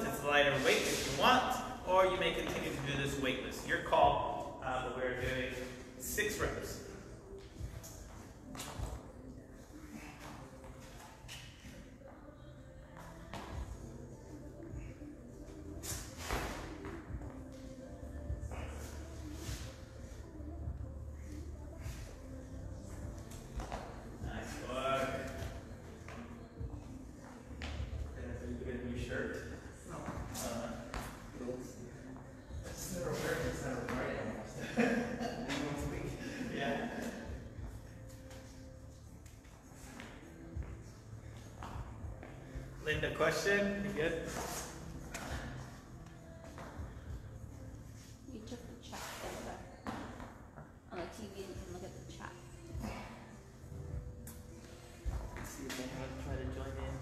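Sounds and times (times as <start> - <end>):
faint background music: 0.0 - 57.0.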